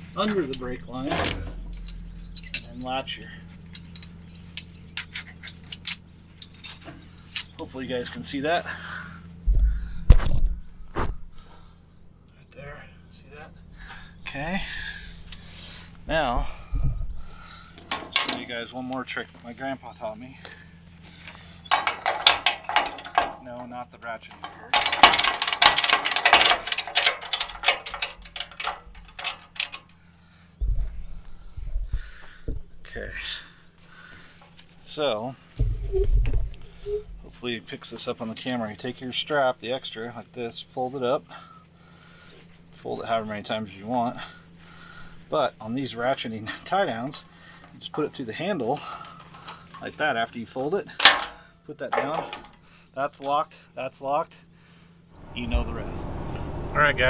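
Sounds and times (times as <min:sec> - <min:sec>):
low hum: 0:00.0 - 0:38.0, 0:54.6 - 0:57.0
metal strap hook clinking: 0:17.8 - 0:18.5, 0:21.6 - 0:23.5, 0:24.3 - 0:30.0, 0:51.0 - 0:52.6
ratchet buckle clicking: 0:24.7 - 0:29.9
low thump: 0:30.6 - 0:32.7, 0:35.6 - 0:37.3.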